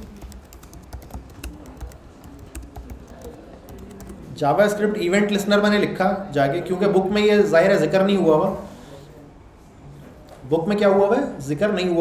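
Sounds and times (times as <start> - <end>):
typing on computer keyboard: 0.0 - 4.3.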